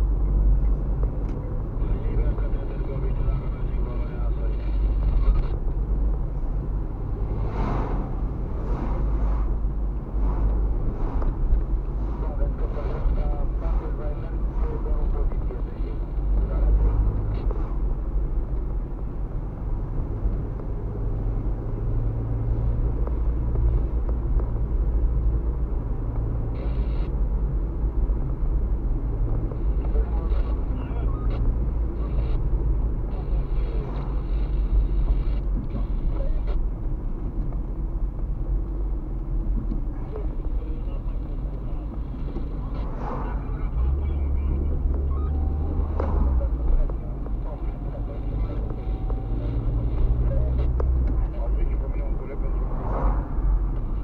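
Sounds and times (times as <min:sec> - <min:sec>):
car engine and tyres rumble: 0:00.0 - 0:54.0.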